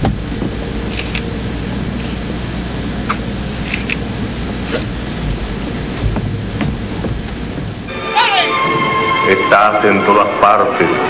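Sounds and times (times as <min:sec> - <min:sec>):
deep rumble: 0:00.0 - 0:07.9
steady rushing noise: 0:00.0 - 0:08.9.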